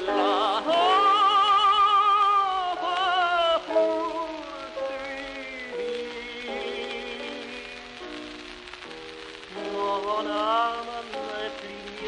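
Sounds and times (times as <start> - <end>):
man singing tenor with vibrato: 0.0 - 7.8, 9.5 - 12.0
record surface hiss: 0.0 - 12.0.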